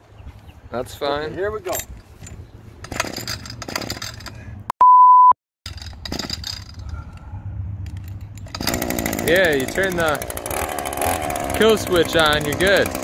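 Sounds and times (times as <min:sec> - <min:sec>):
censor bleep: 0:04.8 - 0:05.4
recoil starter cord pulls: 0:07.9 - 0:13.0.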